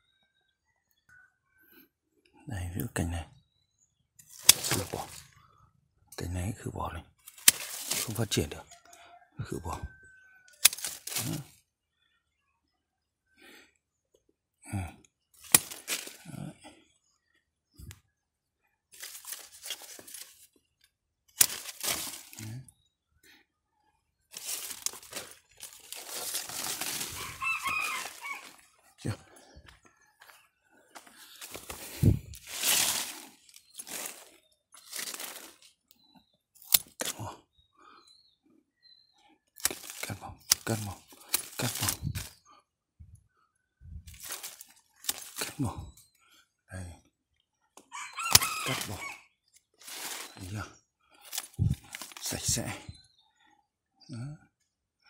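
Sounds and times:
pruning shears snipping: 4.2s - 5.2s, 7.2s - 8.4s, 10.6s - 11.5s, 15.4s - 16.3s, 19.0s - 20.4s, 21.3s - 22.6s, 24.3s - 28.6s, 31.4s - 35.7s, 36.6s - 37.2s, 39.6s - 42.3s, 44.1s - 45.6s, 48.3s - 49.0s, 49.8s - 50.5s, 51.2s - 52.6s
leaves rustling: 4.3s - 5.3s, 7.3s - 8.4s, 10.6s - 11.5s, 15.4s - 16.4s, 19.0s - 20.5s, 21.4s - 22.6s, 24.3s - 28.6s, 31.1s - 35.7s, 39.6s - 42.4s, 44.1s - 45.7s, 48.0s - 49.2s, 49.8s - 50.5s, 51.2s - 52.8s.

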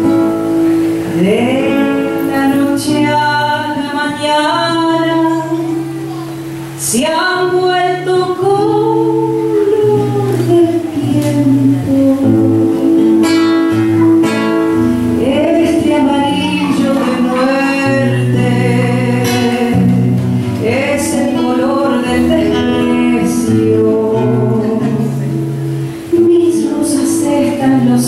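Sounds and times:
plucked acoustic guitar: 0.0s - 28.0s
woman singing: 1.1s - 6.0s, 6.8s - 28.0s.

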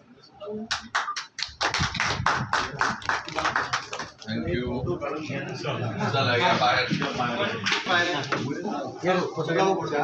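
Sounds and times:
group clapping in rhythm: 0.7s - 4.2s.

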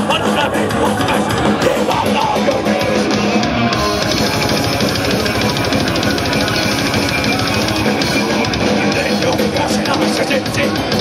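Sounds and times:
distorted electric guitar riffing: 0.0s - 11.0s
very fast drumming: 0.0s - 11.0s.

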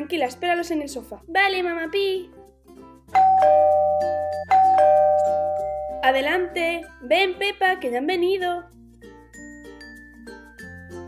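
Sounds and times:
two-tone doorbell chime: 3.2s - 6.8s.

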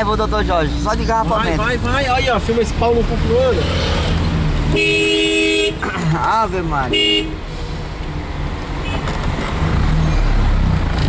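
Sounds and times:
road traffic noise: 0.0s - 11.0s
car horn blast: 4.7s - 5.8s, 6.9s - 7.4s.

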